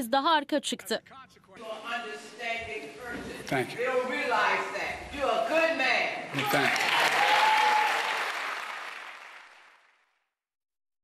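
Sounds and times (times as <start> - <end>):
audience applauding: 6.4 - 10.2.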